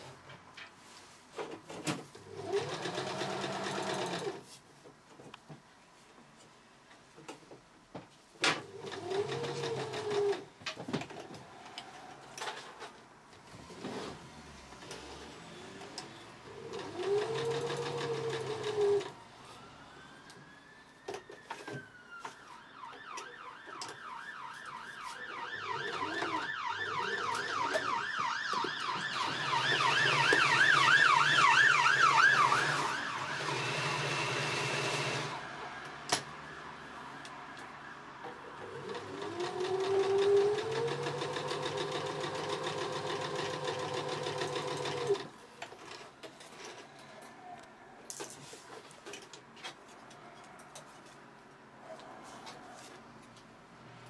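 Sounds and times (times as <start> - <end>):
sewing machine stitching: 2.2 - 4.4, 8.6 - 10.5, 13.5 - 19.2, 32.3 - 35.4, 38.6 - 45.3
siren wailing and yelping: 19.2 - 34.1.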